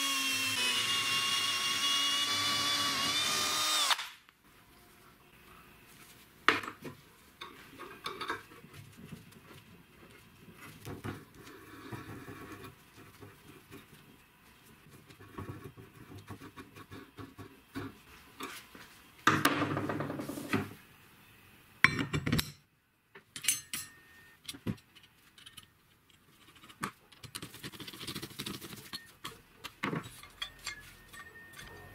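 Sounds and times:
metal parts clinking and scraping: 30.0 - 31.9.

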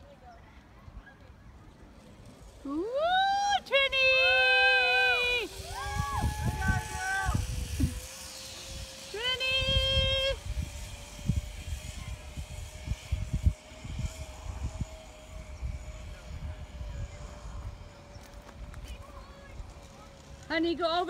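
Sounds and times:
wind buffeting microphone: 3.8 - 20.4.

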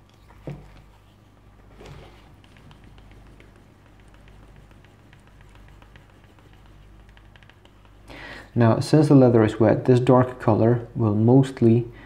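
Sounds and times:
wooden burnisher rubbing leather edge: 0.7 - 8.0.

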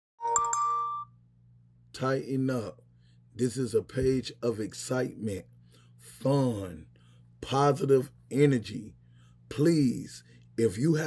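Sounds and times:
two-note electronic chime: 0.2 - 1.2.

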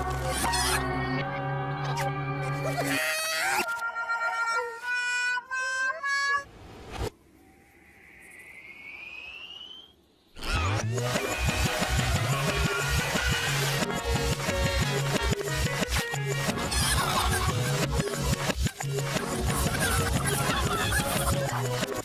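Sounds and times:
faint rising whistle: 7.6 - 10.1.

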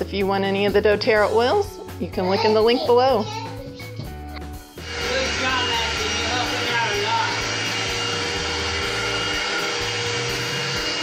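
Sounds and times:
vacuum cleaner running on carpet: 4.8 - 11.0.

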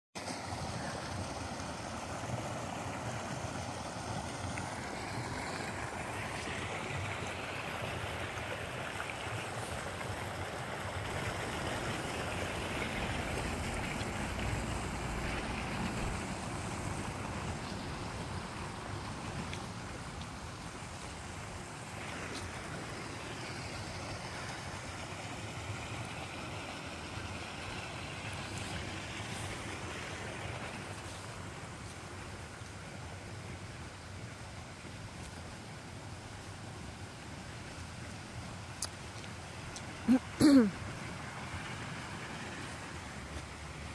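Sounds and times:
water pouring over a spillway: 0.2 - 43.9.

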